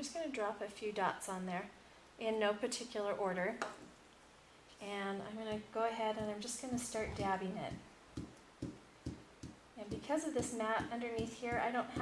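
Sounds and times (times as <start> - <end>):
felt pad tapping on metal sheet: 5.5 - 12.0.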